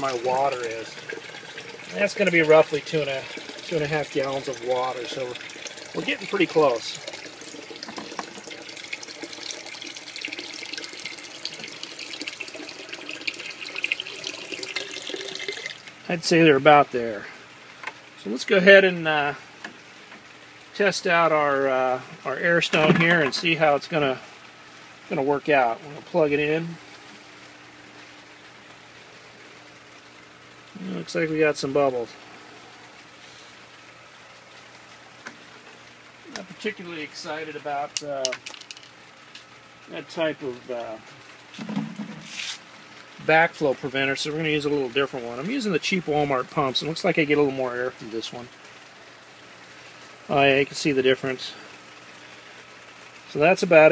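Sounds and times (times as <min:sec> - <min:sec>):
water pouring into plastic bucket: 0:00.0 - 0:16.0.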